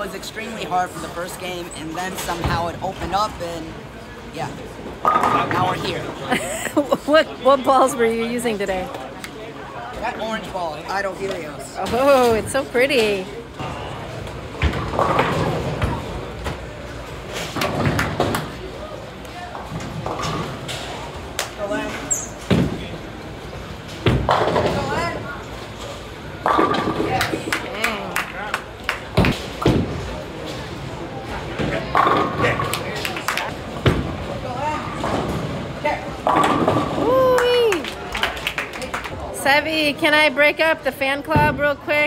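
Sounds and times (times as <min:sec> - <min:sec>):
murmur of voices: 0:00.0 - 0:42.0
bowling balls and pins clattering: 0:31.5 - 0:37.0.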